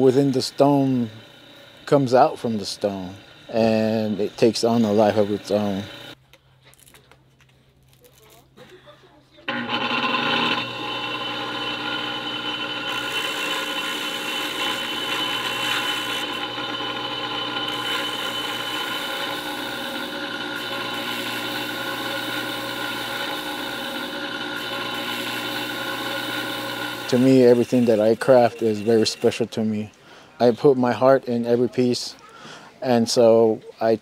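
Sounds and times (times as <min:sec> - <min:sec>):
bench grinder sanding stone: 0:00.0 - 0:06.2, 0:09.5 - 0:30.0.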